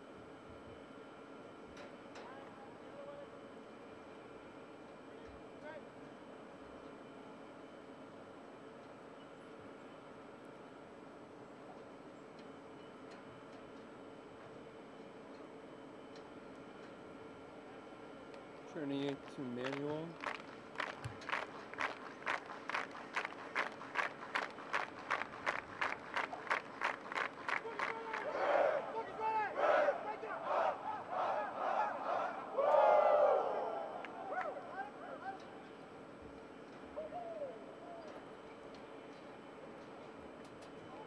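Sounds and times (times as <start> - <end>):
group clapping in unison: 19.1 - 28.9
crowd shouting and yelling: 27.5 - 35.5.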